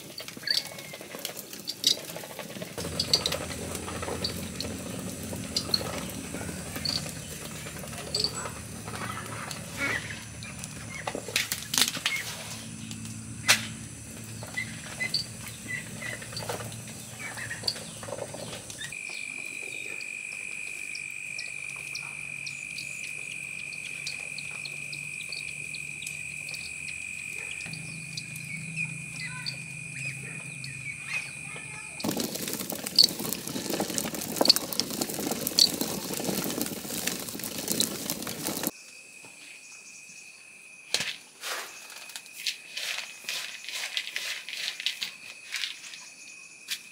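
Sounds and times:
gritty crackling with sharp clicks: 0:00.0 - 0:12.2, 0:31.9 - 0:38.7
hand mill grinding grain: 0:00.0 - 0:12.4, 0:32.0 - 0:38.7, 0:42.7 - 0:46.0
high-pitched insect drone: 0:18.9 - 0:32.1.

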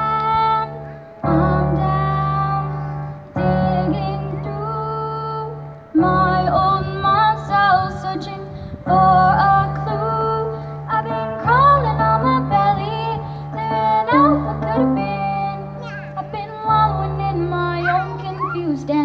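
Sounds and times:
electric keyboard piano chords: 0:00.0 - 0:19.0
girl singing: 0:00.0 - 0:19.0.

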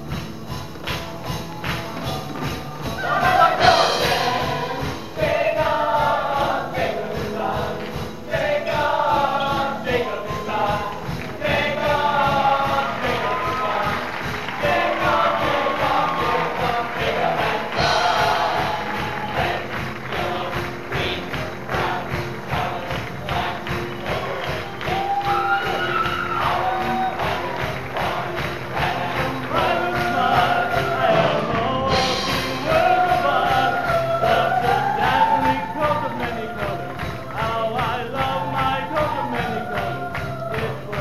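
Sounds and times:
upbeat instrumental backing: 0:00.0 - 0:41.0
cast singing together: 0:02.1 - 0:41.0.

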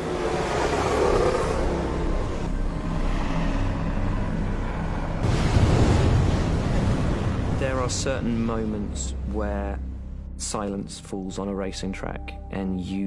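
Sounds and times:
racing car engines humming: 0:00.0 - 0:05.2
road and air noise: 0:00.0 - 0:05.4.

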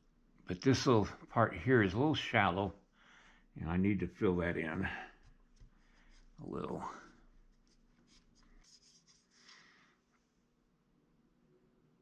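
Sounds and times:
hands working modelling clay: 0:04.6 - 0:10.3.

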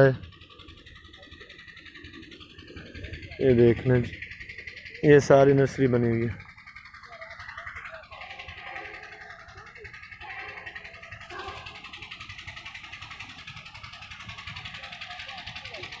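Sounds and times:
faint indistinct voices: 0:00.0 - 0:16.0.

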